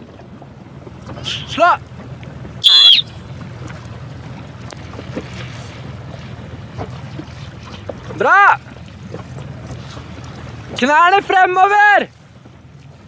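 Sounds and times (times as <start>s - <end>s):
motorboat running slowly: 0.0s - 13.0s
water noise: 0.0s - 13.0s.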